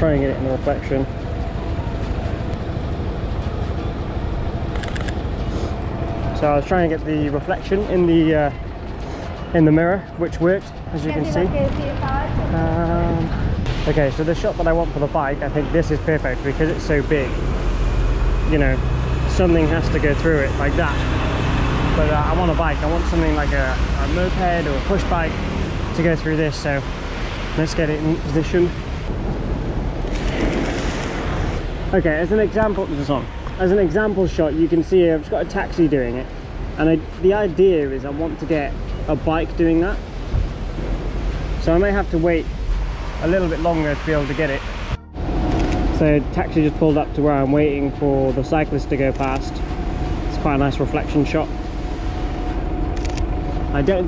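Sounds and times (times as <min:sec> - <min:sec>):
idling vehicles rumble: 0:00.0 - 0:54.0
camera shutter clicks: 0:04.7 - 0:05.2
car tyres splashing through puddle: 0:29.9 - 0:31.7.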